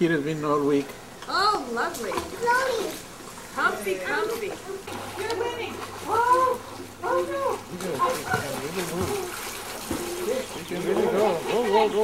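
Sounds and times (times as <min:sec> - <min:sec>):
water splashing: 0:01.7 - 0:12.0.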